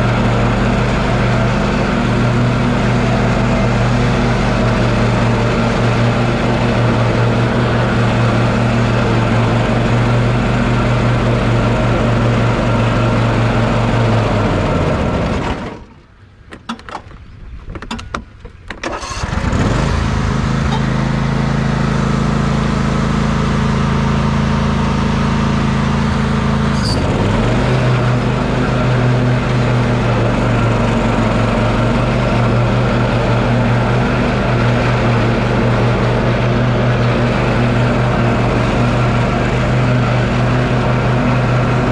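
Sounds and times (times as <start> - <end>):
riding lawn mower engine running: 0.0 - 41.9.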